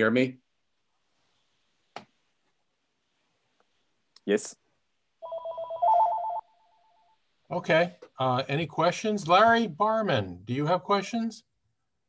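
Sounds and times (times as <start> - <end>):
telephone ringing: 5.2 - 7.2.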